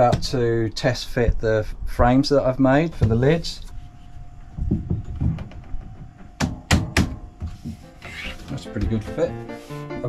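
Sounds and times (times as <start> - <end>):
dull thumps: 4.5 - 7.8
sharp knocks: 4.6 - 7.8.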